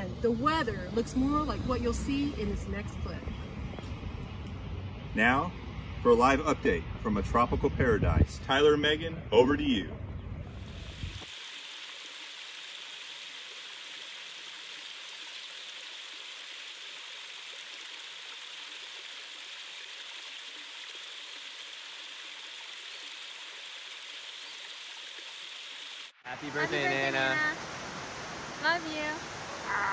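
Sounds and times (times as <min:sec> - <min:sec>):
waterfall rushing over rocks: 0:26.3 - 0:29.9.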